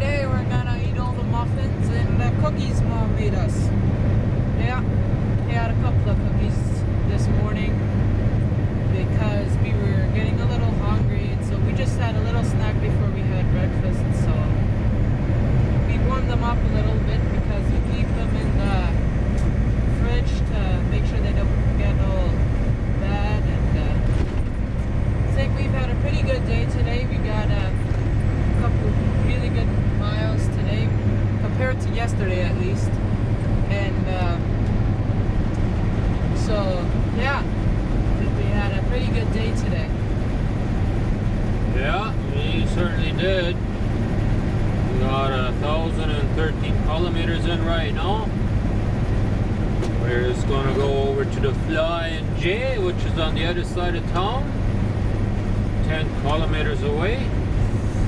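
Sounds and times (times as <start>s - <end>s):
diesel truck engine droning: 0.0s - 58.0s.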